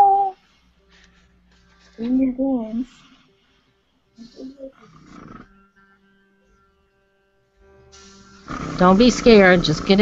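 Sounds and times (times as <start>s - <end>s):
faint murmurs: 4.2s - 5.8s
air compressor humming: 7.9s - 10.0s.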